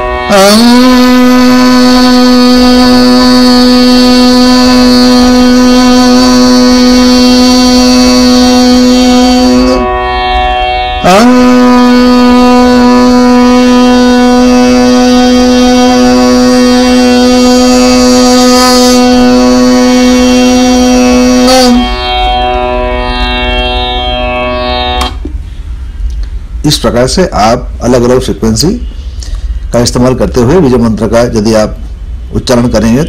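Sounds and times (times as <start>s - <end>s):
long-held musical drone: 0.0s - 26.2s.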